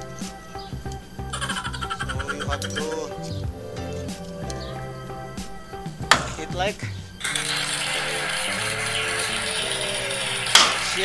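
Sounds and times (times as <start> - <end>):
background music: 0.0 - 11.0
steady hiss: 0.0 - 11.0.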